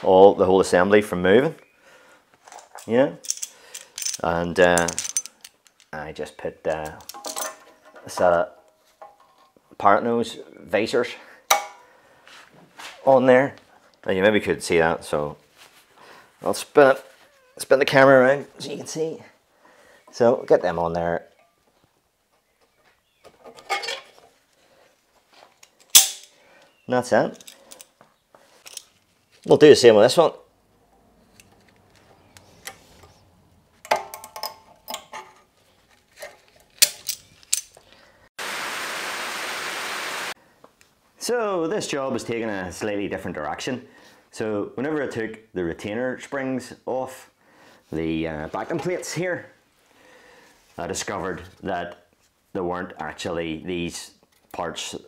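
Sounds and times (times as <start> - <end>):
faint handling noise: 2.3 - 6.0, 6.6 - 9.9, 27.1 - 29.8
metal tools clicking and knocking: 2.5 - 6.0, 6.7 - 9.6, 25.6 - 26.3, 27.3 - 28.0, 33.8 - 35.5, 36.2 - 37.8
metal tool clinking on brake hub: 3.2 - 5.9, 6.9 - 7.7
steady hiss: 38.4 - 40.4.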